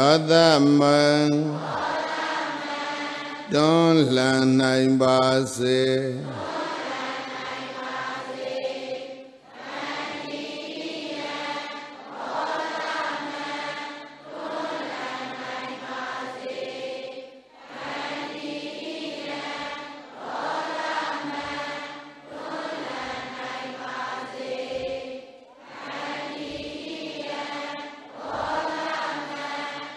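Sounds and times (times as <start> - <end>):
crowd chanting in unison: 0.0 - 29.9.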